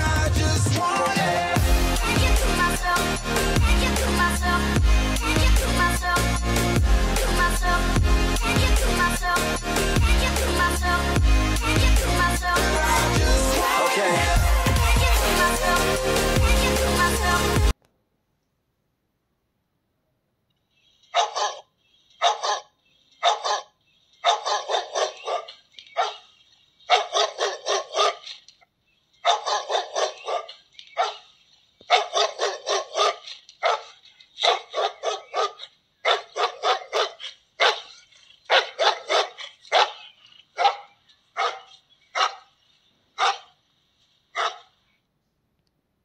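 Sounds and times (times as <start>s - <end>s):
recorded dog barking through speaker: 21.2s - 26.2s, 26.9s - 28.2s, 29.2s - 31.2s, 31.9s - 37.9s, 38.5s - 40.0s, 40.6s - 42.5s, 43.2s - 43.5s, 44.4s - 44.7s.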